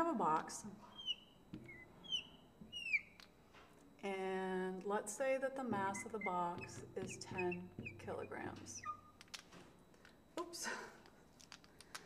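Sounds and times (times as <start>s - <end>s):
marker squeaking on glass: 0.9s - 3.3s, 5.7s - 9.4s.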